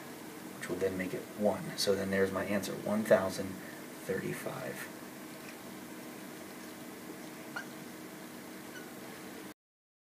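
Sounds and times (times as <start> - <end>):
marker squeak: 7.5 - 7.7, 8.7 - 9.0.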